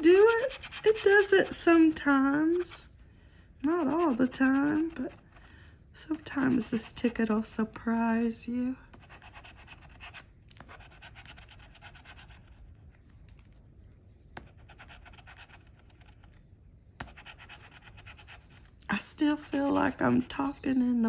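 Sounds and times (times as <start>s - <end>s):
scratching lottery ticket coating: 0.0s - 3.0s, 3.7s - 5.4s, 6.0s - 7.6s, 8.9s - 13.3s, 14.4s - 16.4s, 17.0s - 20.3s.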